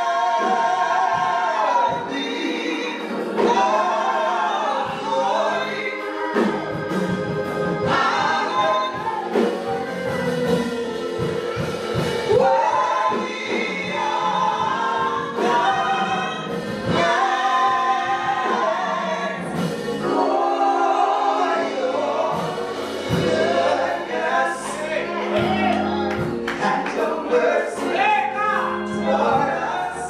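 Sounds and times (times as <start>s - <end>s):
gospel singing trio: 0.0s - 30.0s.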